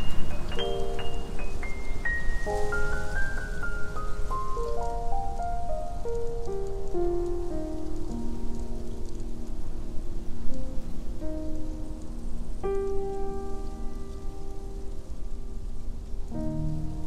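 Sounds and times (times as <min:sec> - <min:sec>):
background noise: 0:00.0 - 0:17.0
solo piano: 0:00.0 - 0:17.0.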